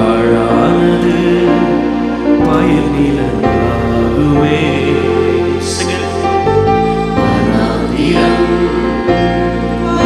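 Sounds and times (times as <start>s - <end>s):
man singing into a microphone: 0.0s - 6.4s
band accompaniment: 0.0s - 10.0s.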